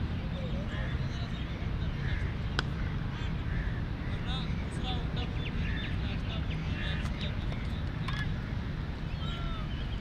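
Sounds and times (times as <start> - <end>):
crows cawing: 2.0 - 4.2.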